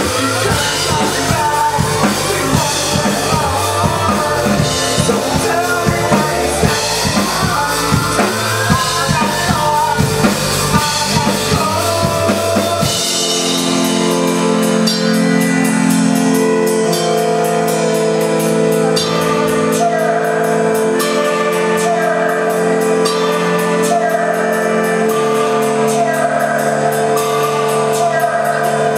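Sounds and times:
drums and bass beat: 0.0 - 28.9
sustained held chords: 0.0 - 28.9.

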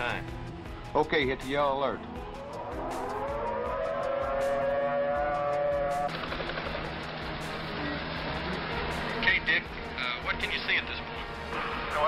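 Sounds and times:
warning siren wailing: 2.1 - 6.1.

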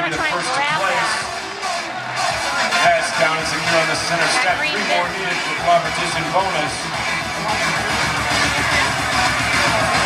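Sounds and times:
loud music with steady beat: 0.0 - 10.0.

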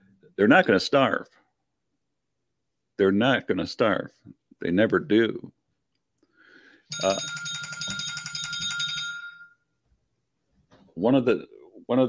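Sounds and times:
electronic chime: 6.9 - 9.6.

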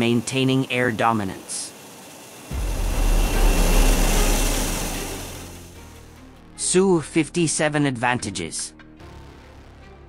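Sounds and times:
jet engine roar: 1.3 - 6.0.

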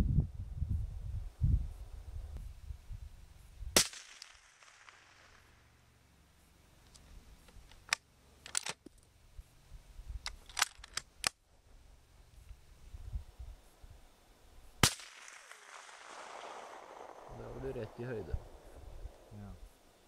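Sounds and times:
sharp clicks from rifle gear: 6.8 - 9.1, 10.2 - 11.4
low rumble: 16.8 - 19.4.

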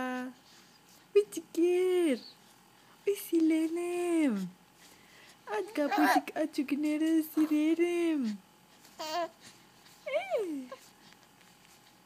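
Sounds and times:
baby cooing: 5.5 - 6.3, 9.0 - 9.4.

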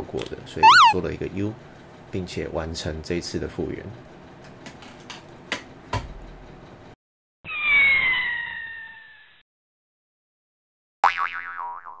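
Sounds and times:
electronic falling tone: 0.6 - 1.0, 7.5 - 9.4
warbling electronic jingle: 0.6 - 1.0.

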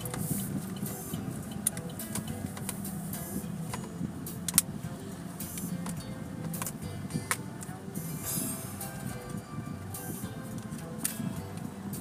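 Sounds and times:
sharp clicks and rattles: 0.0 - 8.1
car cabin hum: 0.0 - 12.0.

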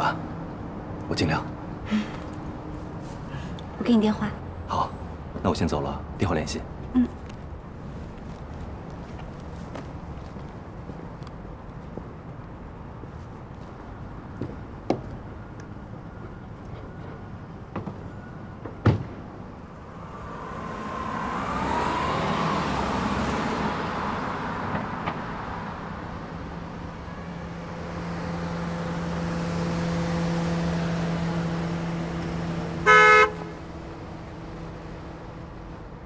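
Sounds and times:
passing cars: 0.0 - 36.0
car horn toot: 32.8 - 33.6.

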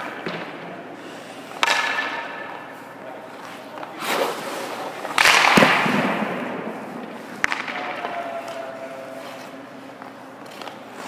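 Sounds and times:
skates scraping ice: 0.0 - 11.0.

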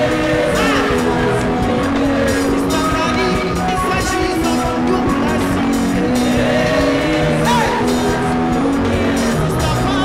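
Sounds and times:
women singing worship music: 0.0 - 3.4, 5.9 - 9.8
backing band: 0.0 - 10.0.

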